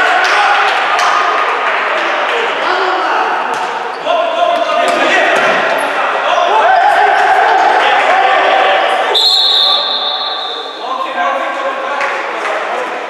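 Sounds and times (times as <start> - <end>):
players calling out: 0.0 - 11.6.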